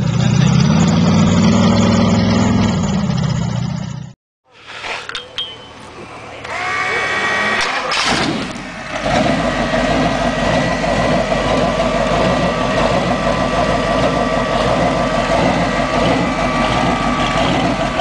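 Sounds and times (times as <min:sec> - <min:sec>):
engine idling: 0:05.9 - 0:18.0.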